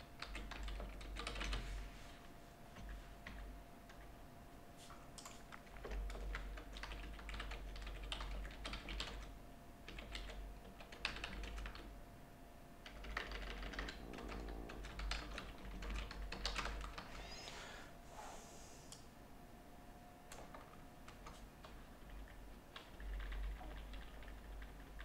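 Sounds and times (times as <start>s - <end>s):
typing on computer keyboard: 0.1s - 1.6s, 5.2s - 11.9s, 12.8s - 17.1s, 20.3s - 25.0s.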